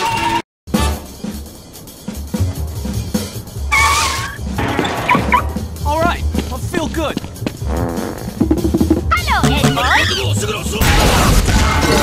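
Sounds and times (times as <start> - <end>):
high-pitched squeaks and yelps: 3.7 - 4.4
music with pulsing bass beat: 7.2 - 10.7.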